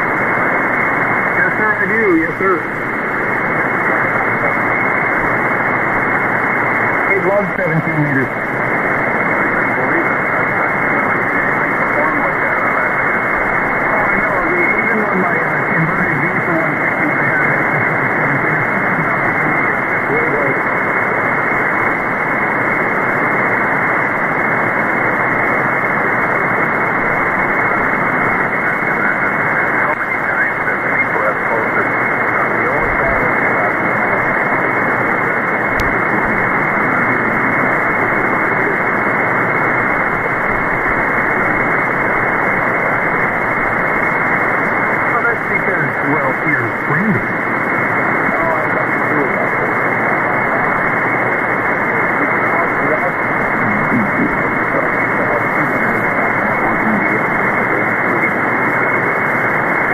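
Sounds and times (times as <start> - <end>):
radio hiss and static: 0.0 - 59.9
faint radio voice: 0.2 - 6.3, 7.0 - 8.4, 9.2 - 21.8, 26.6 - 59.9.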